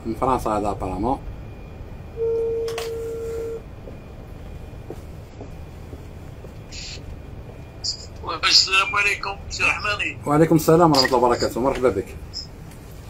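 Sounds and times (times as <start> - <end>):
telephone ringback beep: 2.2 - 3.7.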